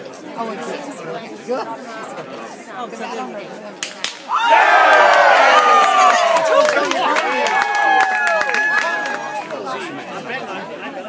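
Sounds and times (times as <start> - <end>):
crowd shouting and cheering: 4.1 - 10.1.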